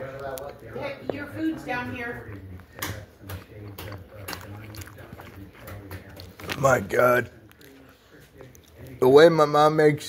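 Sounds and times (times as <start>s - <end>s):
person chewing with wet smacks: 2.1s - 9.0s.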